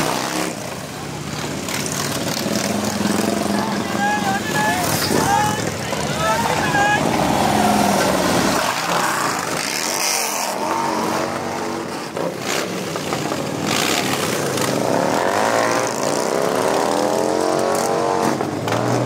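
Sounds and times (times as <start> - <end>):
motorcycles revving past: 0.0 - 19.0.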